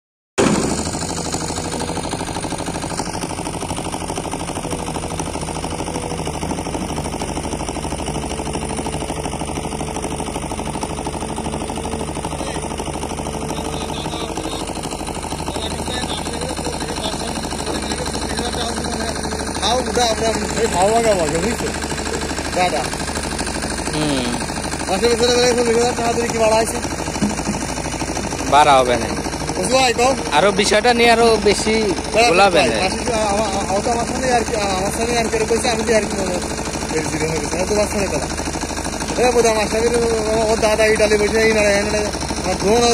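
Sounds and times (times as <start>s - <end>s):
excavator diesel engine under load: 0.4s - 42.9s
excavator digging soil: 0.4s - 42.9s.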